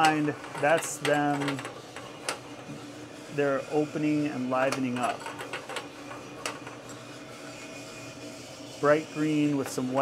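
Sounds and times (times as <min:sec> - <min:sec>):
beans tumbling in roaster drum: 0:00.0 - 0:10.0
machine hum: 0:00.0 - 0:10.0.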